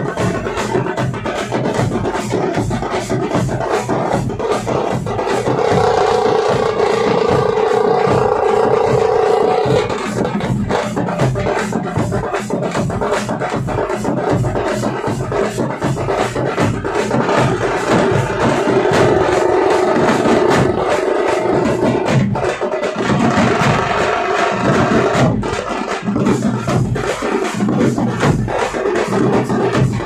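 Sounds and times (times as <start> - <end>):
bass drums: 0.0 - 30.0
frame drums beaten with sticks: 0.0 - 30.0.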